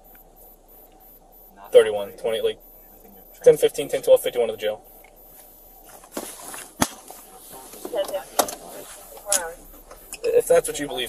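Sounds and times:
man's voice: 10.2 - 11.0.

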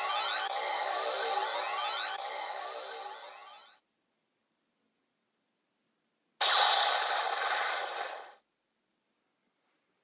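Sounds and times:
static-like electronic rushing: 6.4 - 8.4.

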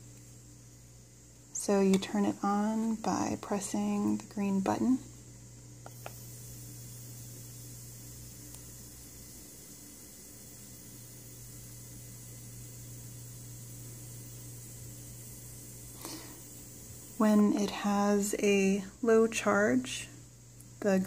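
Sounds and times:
nebulizer hiss and hum: 0.0 - 21.0.

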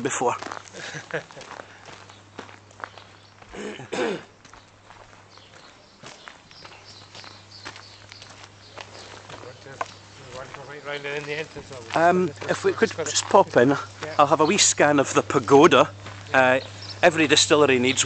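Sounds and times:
footsteps on gravel: 0.0 - 18.0
person laughing: 0.7 - 1.6.

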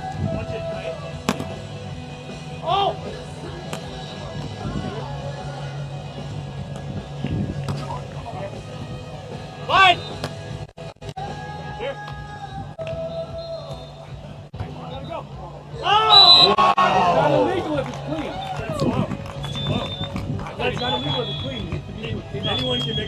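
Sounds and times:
music playing: 0.0 - 23.0
people shouting and cheering: 2.6 - 5.9, 11.2 - 23.0.

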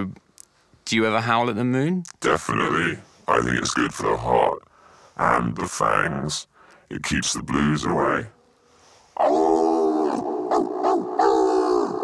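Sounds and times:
person howling like a wolf: 9.2 - 12.0.

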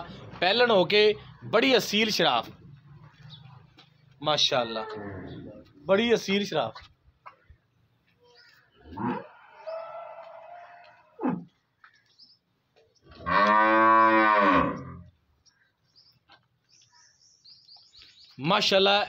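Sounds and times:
cow mooing: 13.2 - 15.1.

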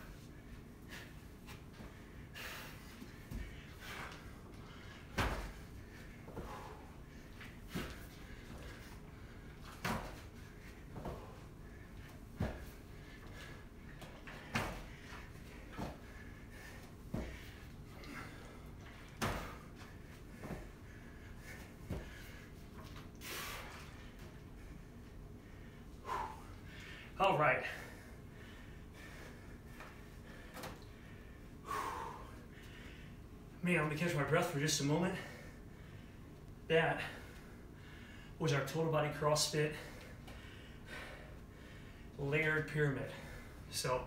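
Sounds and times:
hard breathing: 0.0 - 33.4, 35.0 - 38.4, 39.6 - 42.2, 43.0 - 43.7
feet thumping on gym floor: 5.1 - 5.7, 9.6 - 11.4, 12.1 - 16.2, 16.8 - 18.4, 19.1 - 20.8.

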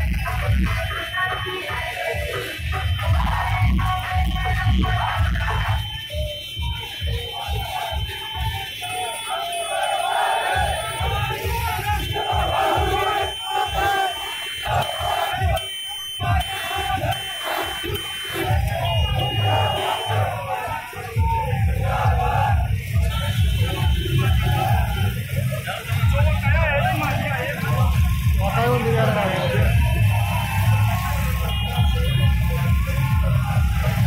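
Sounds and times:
crowd shouting and cheering: 0.0 - 34.0
music with low beat: 1.7 - 8.6, 21.1 - 25.5, 27.7 - 29.0, 29.6 - 34.0.

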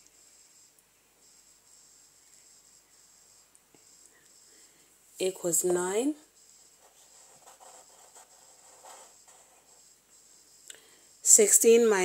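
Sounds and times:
faint high hiss: 0.0 - 12.0.

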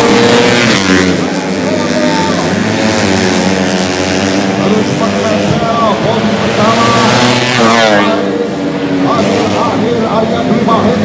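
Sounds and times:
racing motorcycles passing: 0.0 - 11.0.

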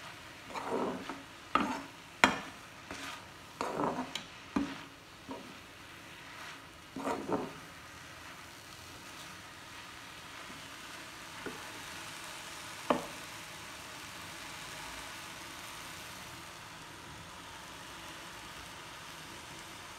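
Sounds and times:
greens sizzling in a pan: 0.0 - 19.9
spoon knocking against pan: 1.6 - 2.6, 12.9 - 13.1.

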